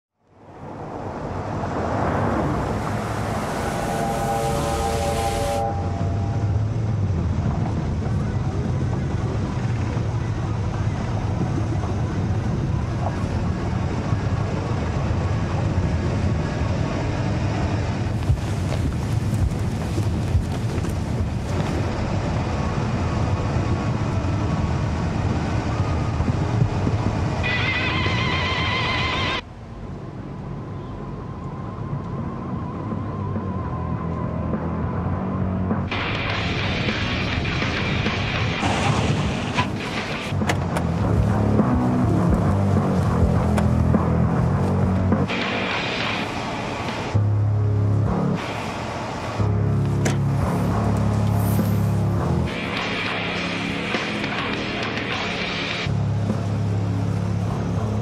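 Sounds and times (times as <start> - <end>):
deep rumbling drone: 0.4 - 58.0
rising pitched notes: 1.3 - 8.0.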